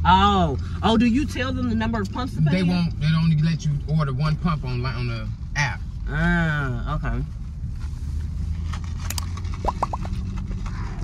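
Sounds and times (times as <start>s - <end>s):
sipping through a straw: 9.1s - 10.2s.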